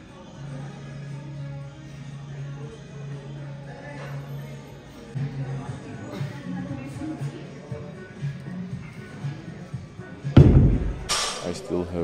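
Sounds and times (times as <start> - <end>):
background music: 0.0 - 12.0
dumbbells thudding on floor: 10.4 - 11.3.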